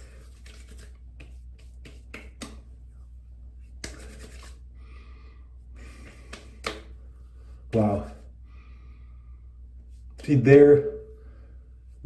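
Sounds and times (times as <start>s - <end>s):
hands rubbing: 0.0s - 4.7s, 5.8s - 7.0s.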